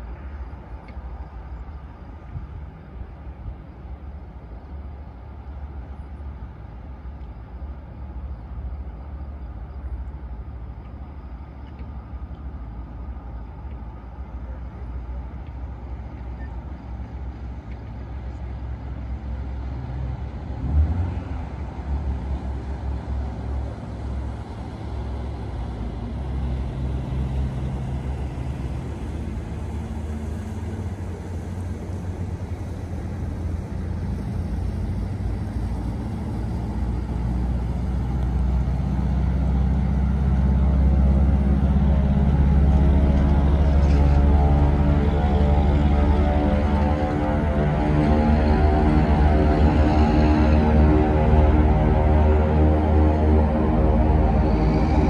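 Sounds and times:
propeller engine droning: 0:15.9 - 0:55.0.

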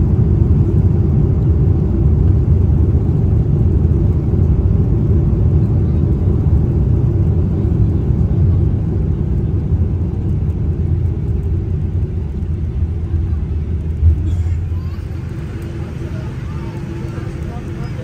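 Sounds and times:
airliner cabin rumble: 0:00.0 - 0:18.0.

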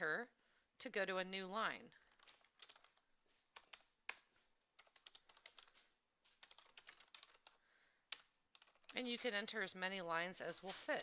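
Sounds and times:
computer keyboard typing: 0:02.0 - 0:09.6.

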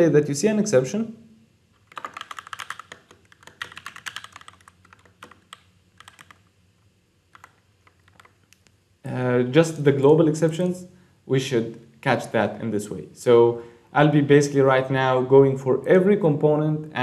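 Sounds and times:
typing on computer keyboard: 0:01.8 - 0:06.4, 0:07.3 - 0:08.5.

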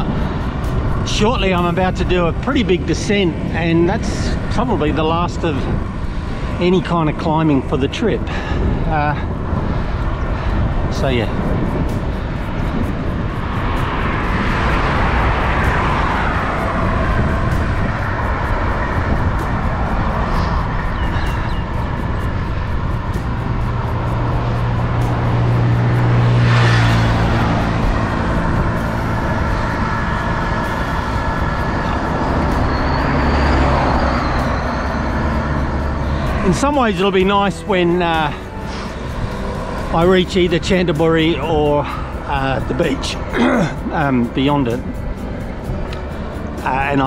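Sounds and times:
vehicles passing on road: 0:00.0 - 0:47.0
wind buffeting microphone: 0:00.0 - 0:47.0.

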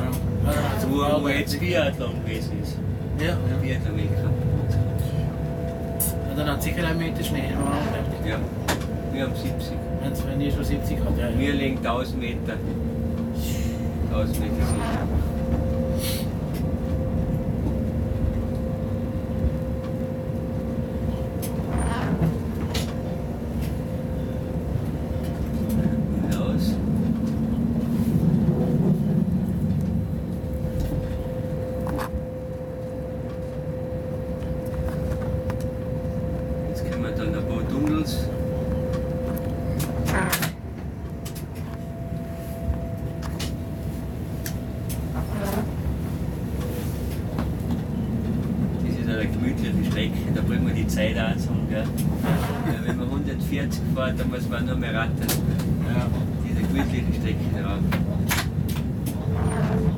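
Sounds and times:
train running rumble: 0:00.0 - 0:59.9.

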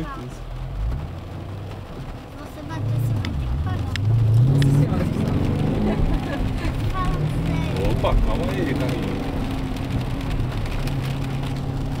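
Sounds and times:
car engine accelerating: 0:00.0 - 0:12.0.

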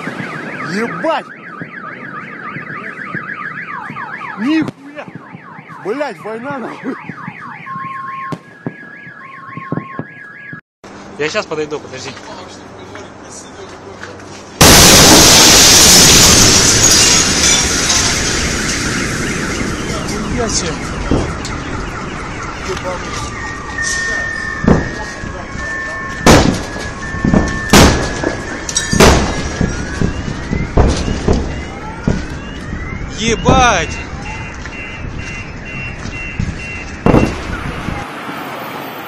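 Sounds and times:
car alarms: 0:00.0 - 0:10.6, 0:14.6 - 0:38.0
loud shock wave blast: 0:14.6 - 0:21.5
sharp bangs: 0:14.6 - 0:38.0.

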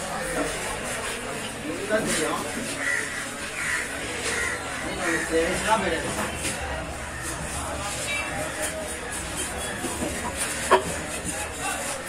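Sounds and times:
crows cawing: 0:02.6 - 0:05.6.

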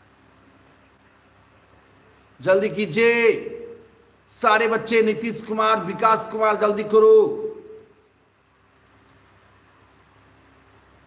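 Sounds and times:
man's voice: 0:02.4 - 0:07.9.

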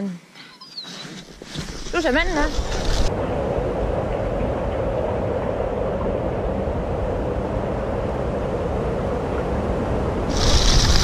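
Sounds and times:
skis sliding over snow: 0:01.4 - 0:03.1, 0:10.3 - 0:11.0.

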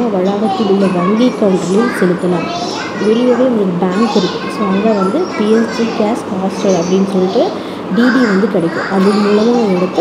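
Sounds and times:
high-pitched voice talking: 0:00.0 - 0:10.0.

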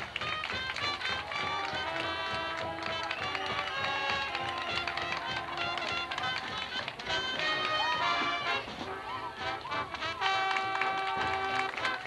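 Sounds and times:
percussion hits: 0:00.0 - 0:09.0
marching band playing: 0:00.0 - 0:12.0.

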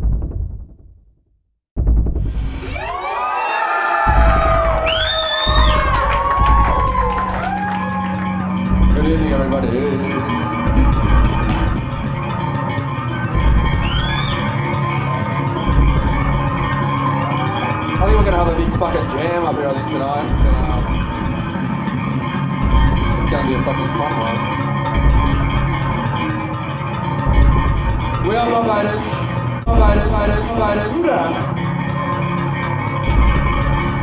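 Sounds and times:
crowd voices and shouts: 0:02.5 - 0:34.0
man speaking into microphone: 0:08.9 - 0:10.2, 0:18.0 - 0:20.9, 0:23.2 - 0:24.4, 0:28.2 - 0:31.5.

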